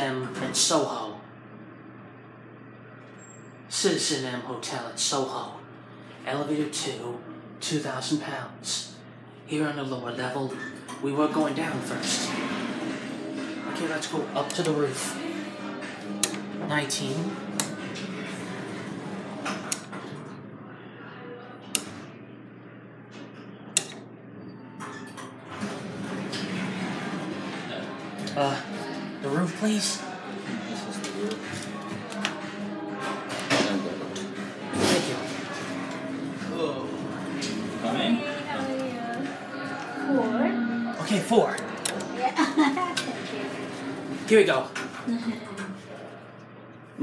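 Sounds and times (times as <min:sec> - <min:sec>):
elevator low hum: 0:08.9 - 0:47.0.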